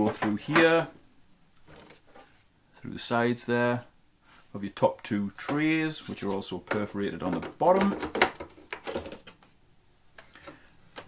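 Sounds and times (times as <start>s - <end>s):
plastic trays knocking and clicking: 6.6s - 9.4s.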